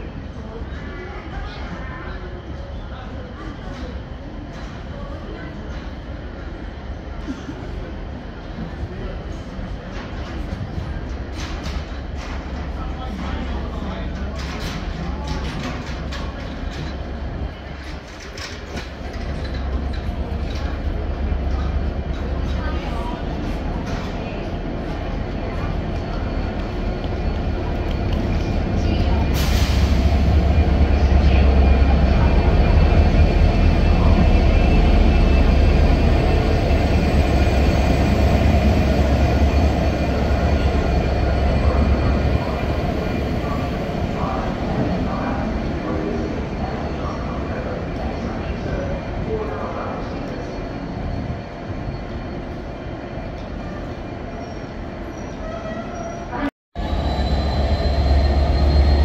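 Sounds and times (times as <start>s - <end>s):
diesel locomotive engine rumble: 0.0s - 59.0s
freight wagons rolling on rails: 9.8s - 29.5s.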